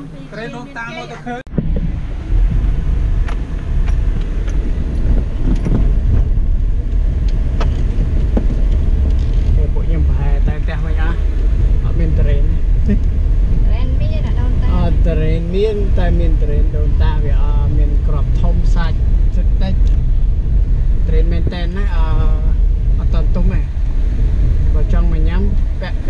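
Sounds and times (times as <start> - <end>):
car rumble on dirt road: 0.0 - 26.0.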